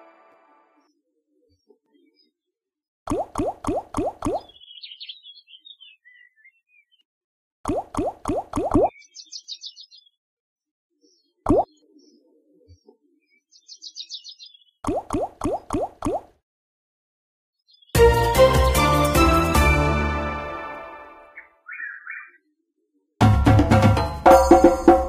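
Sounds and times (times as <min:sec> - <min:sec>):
quick rising bloops: 0:03.1 - 0:04.5, 0:07.7 - 0:08.9, 0:14.8 - 0:16.3.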